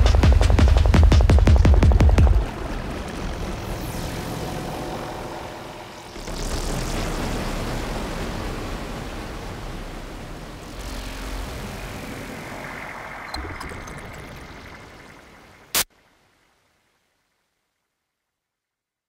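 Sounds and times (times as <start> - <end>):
low steady drone: 0.0 - 13.5
whooshing electronic noise: 1.6 - 8.7.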